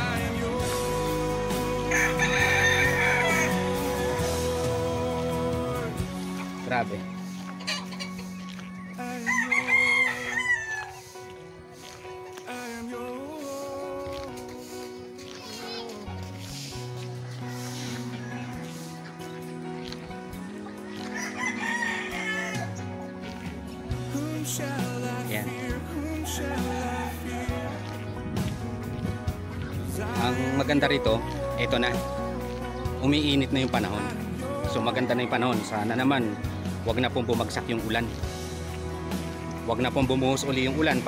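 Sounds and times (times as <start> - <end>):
background music: 0.0 - 41.0
rooster crowing: 1.9 - 4.5, 9.2 - 11.1, 20.9 - 22.7, 26.2 - 27.6.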